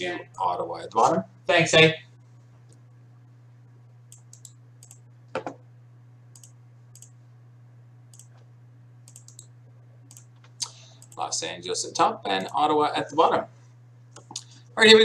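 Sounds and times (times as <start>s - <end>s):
steady low hum: 0.0s - 15.0s
mouse and keyboard clicks: 9.1s - 9.5s.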